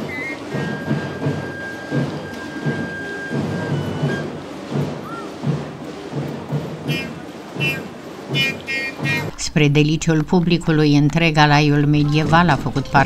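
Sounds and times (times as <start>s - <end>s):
procession noise: 0.0s - 6.1s, 6.8s - 13.0s
drums beating marching rhythm: 0.0s - 13.0s.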